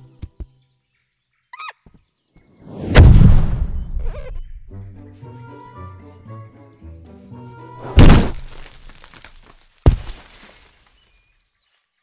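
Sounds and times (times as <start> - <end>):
cartoon crash with crackling tail: 2.7 - 4.2, 8.0 - 8.5
sharp cartoon knock: 7.9 - 8.5.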